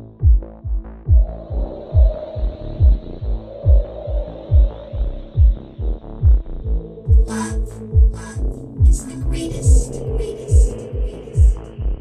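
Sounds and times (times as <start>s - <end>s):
deep kick drum: 0.0s - 12.0s
sustained synth pad: 1.2s - 12.0s.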